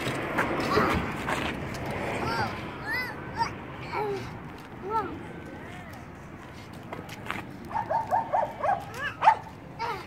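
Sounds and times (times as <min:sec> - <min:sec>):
dog yipping: 0:07.7 - 0:09.5.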